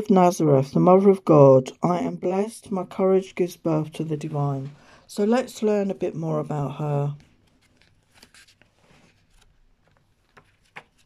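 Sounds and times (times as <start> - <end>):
woman speaking: 0.0 - 7.2
paper rustling and tapping: 7.2 - 11.0.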